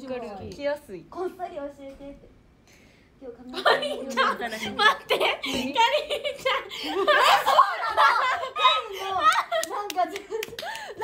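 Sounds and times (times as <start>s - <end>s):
people laughing: 3.6s - 11.0s
people clapping: 9.1s - 11.0s.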